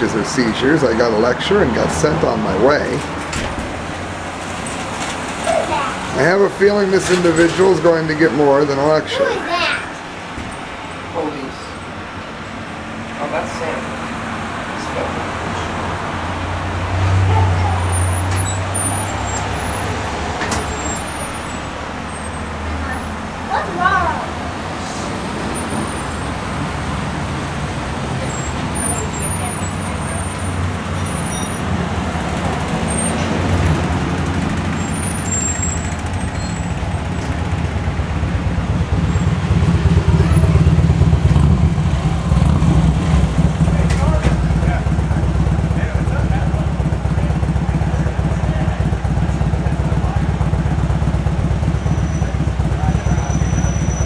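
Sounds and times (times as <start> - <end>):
car engines and passing vehicles: 0.0 - 54.0.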